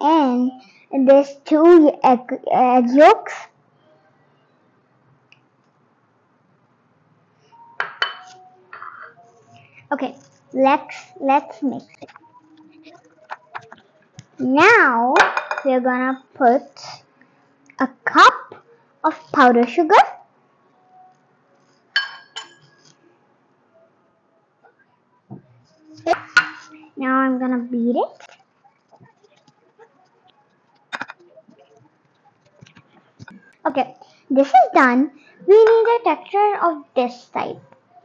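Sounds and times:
ceramic bowls clinking: 7.8s - 9.2s, 15.2s - 15.7s, 21.9s - 23.0s, 26.0s - 26.8s.

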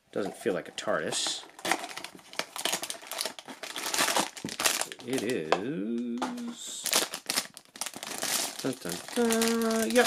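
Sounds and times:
packaging crinkling: 1.1s - 10.0s.

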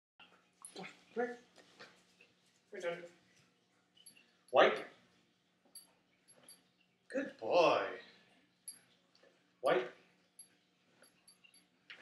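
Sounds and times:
man speaking a command: 4.5s - 4.9s, 7.2s - 8.0s, 9.6s - 9.9s.

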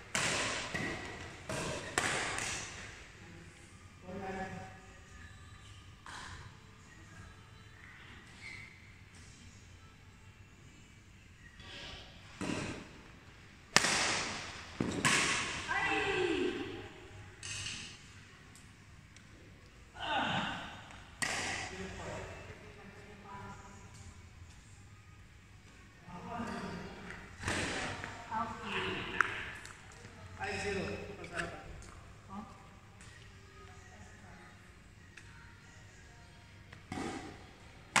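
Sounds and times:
rackets striking a shuttlecock: 0.1s - 2.9s, 13.7s - 15.7s, 21.2s - 21.7s, 36.8s - 37.3s.

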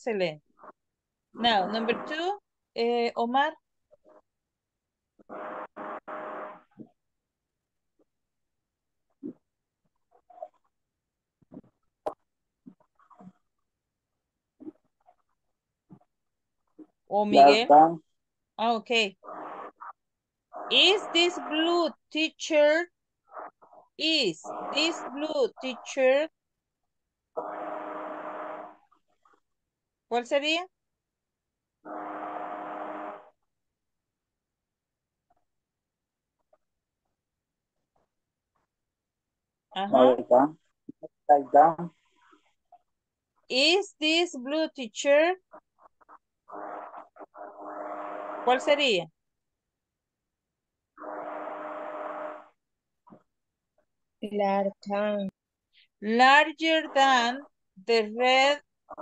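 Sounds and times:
microphone hiss with faint hum: 17.2s - 18.0s.

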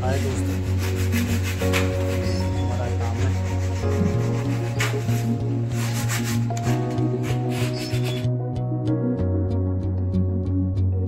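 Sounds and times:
sandpaper rubbing wood: 0.0s - 8.3s
background music: 0.0s - 11.0s.

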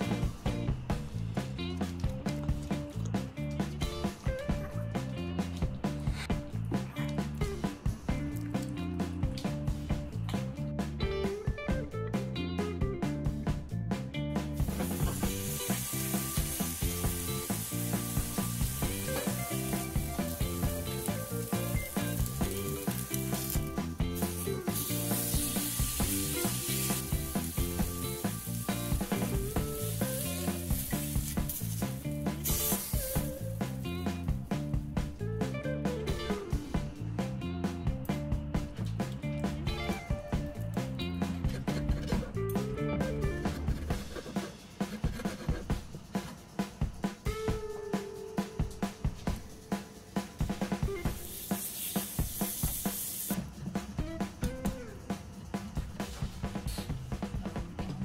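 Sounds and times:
background music with steady beat: 0.0s - 58.0s
steak sizzling on griddle: 14.6s - 34.1s, 51.0s - 53.4s.

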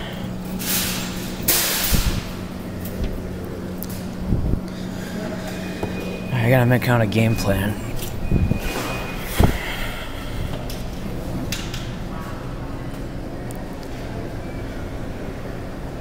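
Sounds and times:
low hum of machine and shop: 0.0s - 16.0s.

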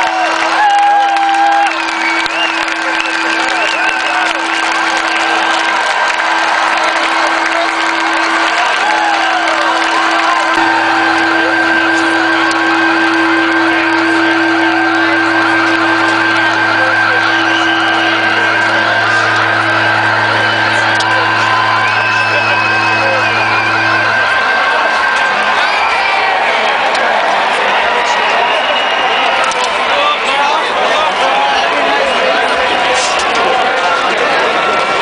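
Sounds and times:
crowd cheering and whooping: 0.0s - 35.0s
held musical tones droning: 0.2s - 26.4s
low hum: 6.6s - 25.4s.

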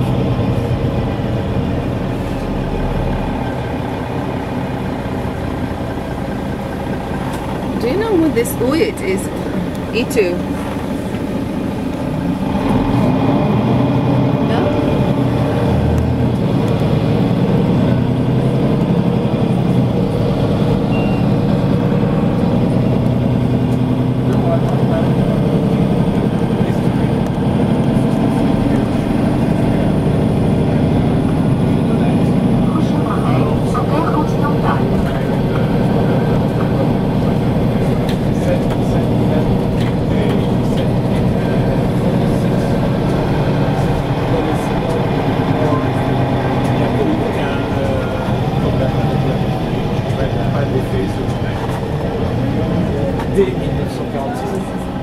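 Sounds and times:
vehicle engine and road rumble: 0.0s - 55.0s.

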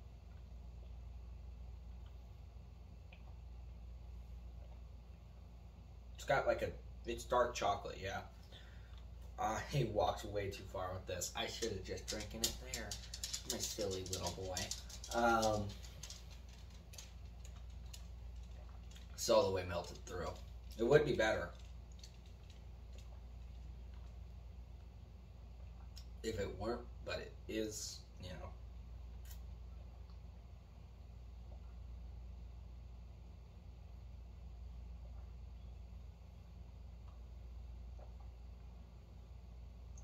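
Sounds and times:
low hum: 0.0s - 40.0s.

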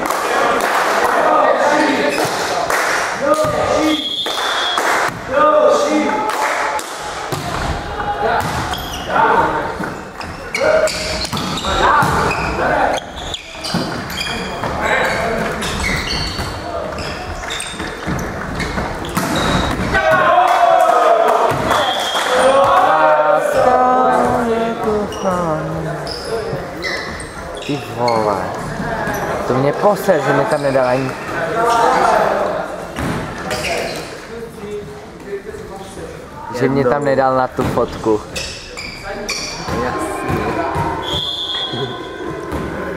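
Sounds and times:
players calling out: 3.2s - 32.6s, 38.4s - 42.9s
volleyball thudding: 7.3s - 8.8s
sneakers squeaking on floor: 8.4s - 19.9s, 24.1s - 29.5s, 30.3s - 32.1s, 32.9s - 34.2s, 38.2s - 42.9s.

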